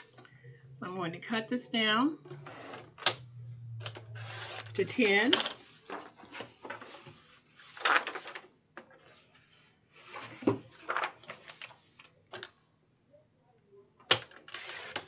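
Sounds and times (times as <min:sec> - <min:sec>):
paper rustling: 0:04.2 - 0:12.5.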